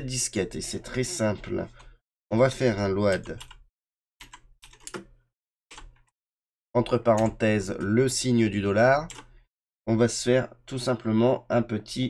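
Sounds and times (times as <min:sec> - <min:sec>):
computer keyboard typing: 0:03.0 - 0:05.1, 0:05.7 - 0:06.2, 0:07.1 - 0:08.0, 0:09.0 - 0:09.3.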